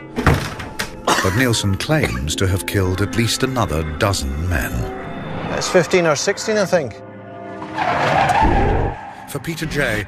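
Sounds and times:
sustained music tones: 0.0s - 10.0s.

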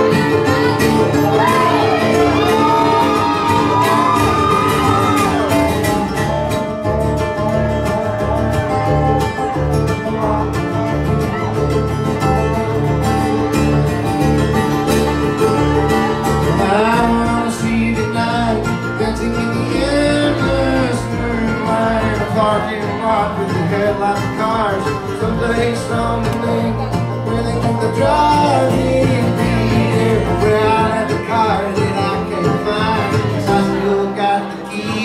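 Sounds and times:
acoustic guitar: 0.0s - 35.0s
banjo: 0.0s - 35.0s
mandolin: 0.0s - 35.0s
resonator guitar sliding lead: 0.0s - 35.0s
upright bass notes: 0.0s - 35.0s.

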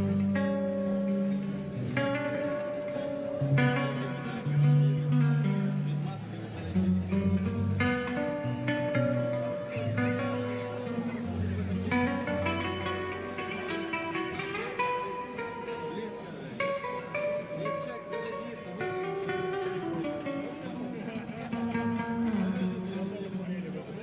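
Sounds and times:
fingerstyle acoustic guitar: 0.0s - 24.0s.

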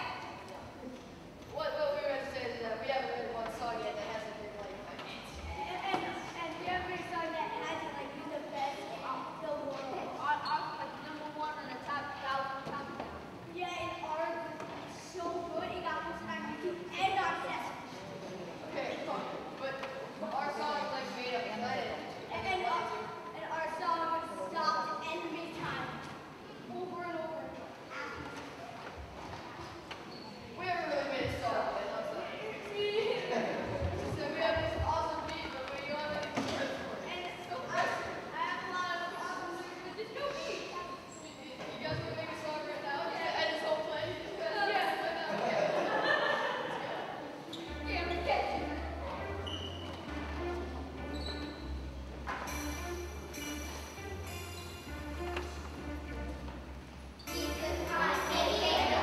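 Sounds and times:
indistinct voices in a hall: 0.0s - 59.0s.

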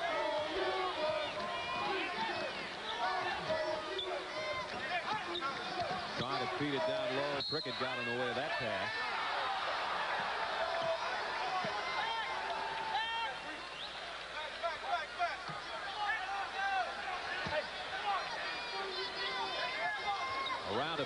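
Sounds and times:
arena crowd noise: 0.0s - 21.0s.

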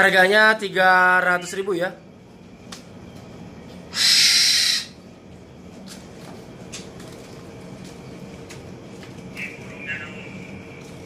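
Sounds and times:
low background rumble and hum: 0.0s - 11.0s
bird harsh rasping call: 3.9s - 5.0s.

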